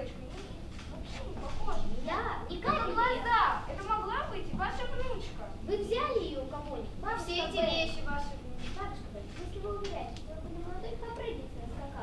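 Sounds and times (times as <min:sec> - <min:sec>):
girls speaking: 0:00.0 - 0:12.0.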